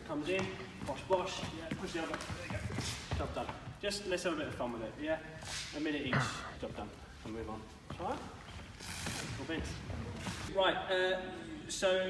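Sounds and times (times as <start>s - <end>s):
man speaking: 0.0s - 8.4s
soft hissy movement noises: 0.1s - 12.0s.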